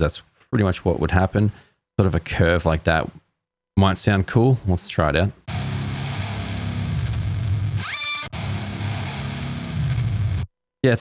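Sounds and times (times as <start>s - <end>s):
guitar squeal rising in pitch: 5.5s - 10.4s
distorted metal guitar: 5.5s - 10.5s.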